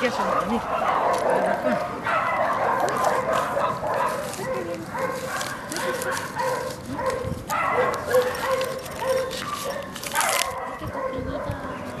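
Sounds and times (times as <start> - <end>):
plastic packet crinkling: 4.0 - 10.8.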